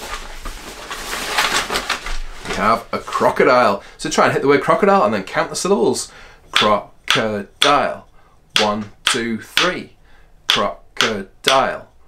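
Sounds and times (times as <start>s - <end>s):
fabric bag rustling: 0.0s - 3.2s.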